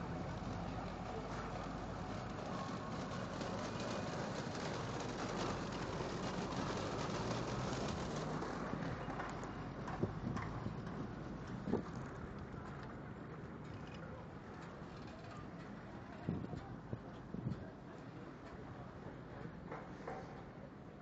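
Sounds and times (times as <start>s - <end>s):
wind and road noise: 0.0s - 17.8s.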